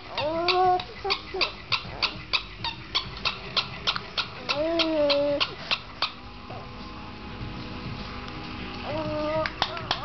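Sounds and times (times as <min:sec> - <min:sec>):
small dog whining: 0:00.0 - 0:06.7, 0:08.8 - 0:10.0.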